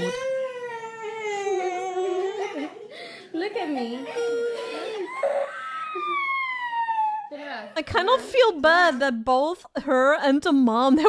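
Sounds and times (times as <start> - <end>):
girl crying and wailing: 4.0 - 7.7.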